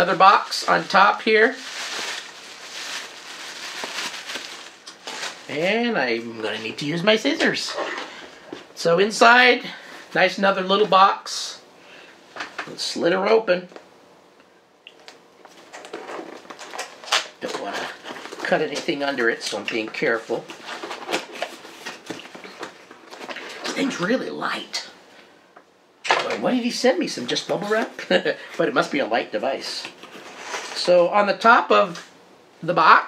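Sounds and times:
bubble wrap rustling and crinkling: 0.0 - 5.8, 15.4 - 23.3.

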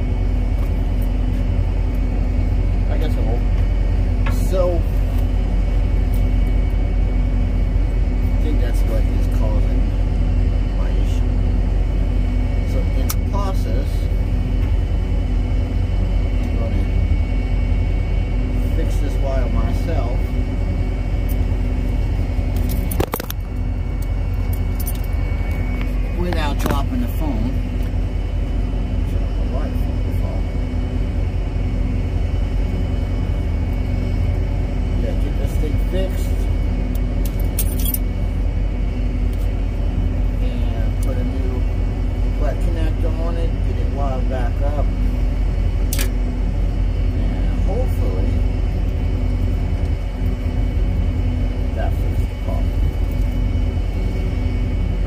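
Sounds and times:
engine idling: 0.0 - 55.0
key ring jingling: 37.6 - 38.0.

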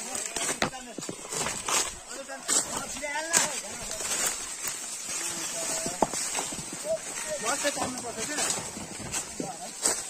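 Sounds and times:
footsteps through dry leaves: 0.0 - 10.0.

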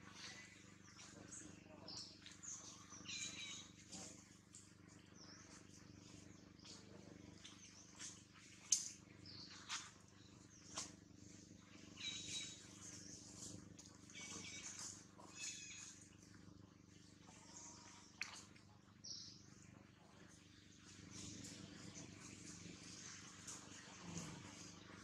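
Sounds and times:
animal chirps and squeaks: 3.0 - 4.1, 12.0 - 12.6, 14.1 - 16.0.

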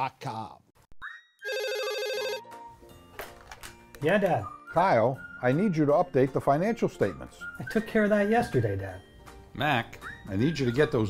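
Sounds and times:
desk telephone electronic ring: 1.5 - 2.4.

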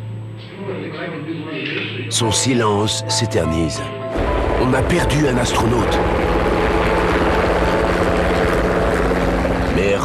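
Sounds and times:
helicopter hovering: 4.1 - 10.0.

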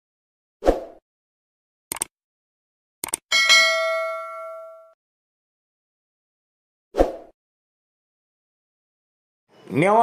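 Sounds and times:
bright bell ding: 3.3 - 5.0.

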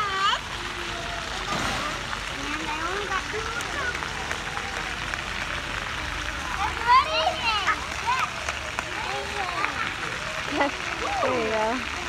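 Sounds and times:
children calling: 0.0 - 12.0
water splashing: 0.0 - 12.0.

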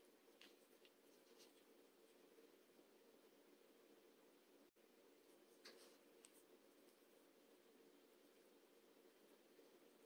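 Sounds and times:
scratchy yarn rustle: 0.2 - 2.5.

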